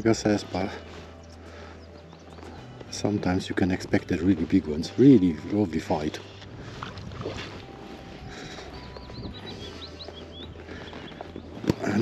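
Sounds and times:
low wind: 0.0 - 12.0
water lapping at shore: 4.4 - 10.0.

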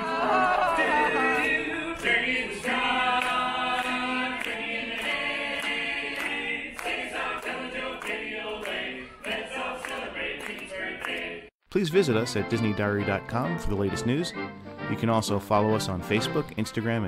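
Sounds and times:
a cappella group singing: 0.0 - 11.5.

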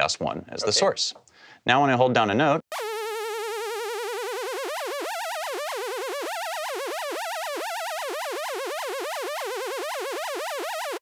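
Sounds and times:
wobbling sawtooth synthesizer note: 2.7 - 11.0.

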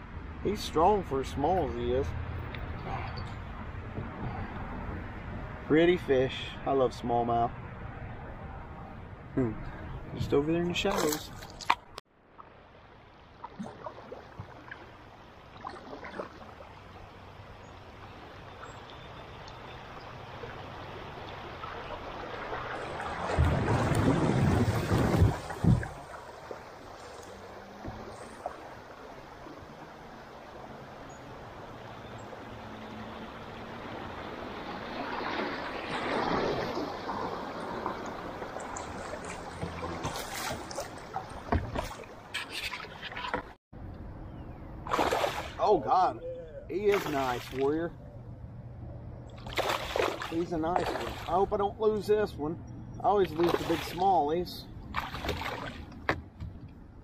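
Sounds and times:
river water rushing: 13.7 - 43.1.

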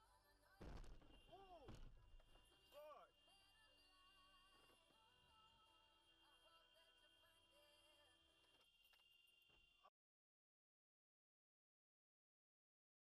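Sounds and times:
quiet background music: 0.0 - 9.6.

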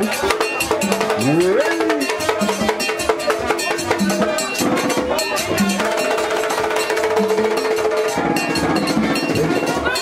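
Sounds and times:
drums: 0.0 - 10.0
struck metal bell: 0.2 - 10.0
person crying out: 1.2 - 2.2.

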